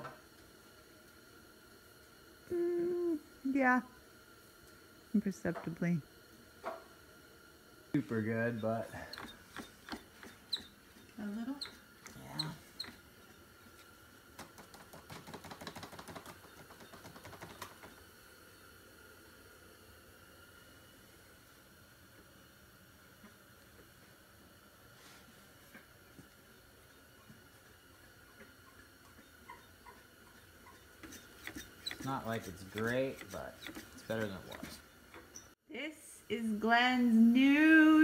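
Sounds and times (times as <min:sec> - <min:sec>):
faint room hum: 0:00.0 - 0:38.0
small rapid clicks: 0:14.4 - 0:18.0.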